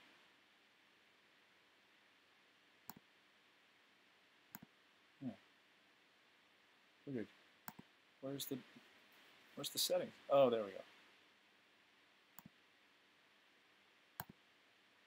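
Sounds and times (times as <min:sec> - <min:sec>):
computer mouse clicking: 0:02.9 - 0:03.1, 0:04.5 - 0:04.7, 0:07.6 - 0:07.9, 0:12.4 - 0:12.6, 0:14.2 - 0:14.4.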